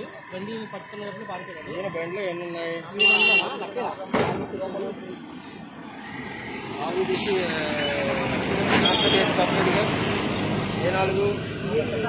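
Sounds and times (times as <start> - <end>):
passing vehicles rumbling: 0.0 - 12.0.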